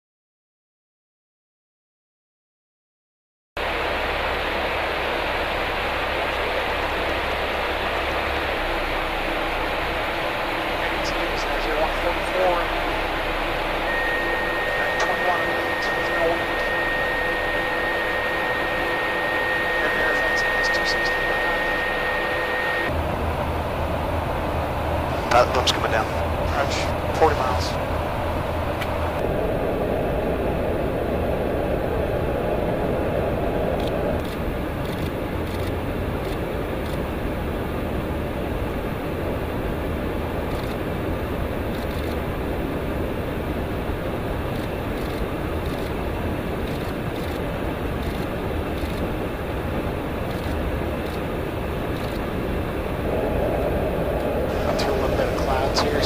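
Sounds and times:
airflow rushing: 3.6 - 34.8, 49.2 - 56.0
aircraft engine noise: 3.6 - 56.0.

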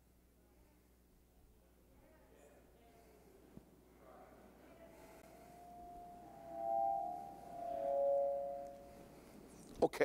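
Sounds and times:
microphone feedback ringing: 5.2 - 9.1.

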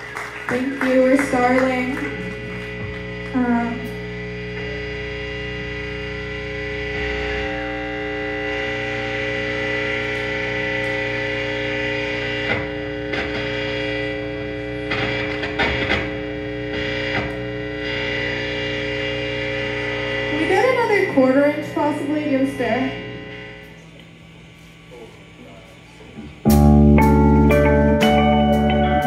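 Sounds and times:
distorted electric guitar drone: 0.0 - 29.0
guitar strings scraped or strummed: 6.6 - 23.6.

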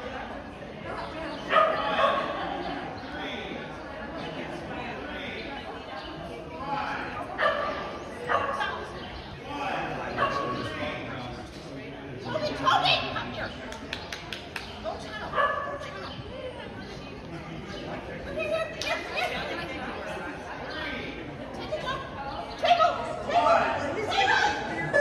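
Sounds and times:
voices chattering in a hall: 0.0 - 25.0.

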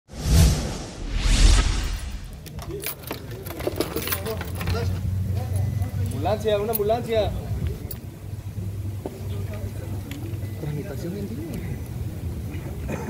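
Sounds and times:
whoosh transition effects: 0.1 - 2.5
people's voices: 2.2 - 13.0.

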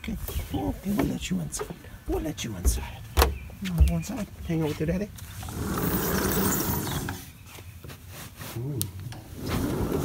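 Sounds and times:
sliding door rolling on track: 5.4 - 7.2, 9.4 - 10.0.

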